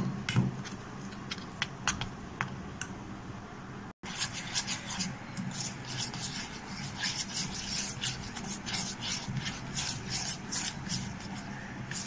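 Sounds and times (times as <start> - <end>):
hand rubbing mixture in metal bowl: 4.0 - 12.0.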